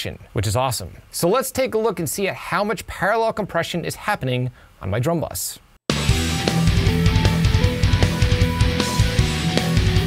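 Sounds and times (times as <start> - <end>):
heavy metal drum kit: 5.9 - 10.0
pitched notes: 5.9 - 10.0
rapid bass drum hits: 5.9 - 10.0.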